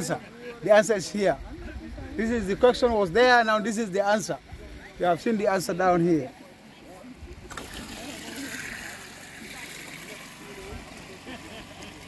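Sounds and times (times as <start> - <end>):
faint distant voices: 0.0 - 12.0
outdoor background noise: 0.0 - 12.0.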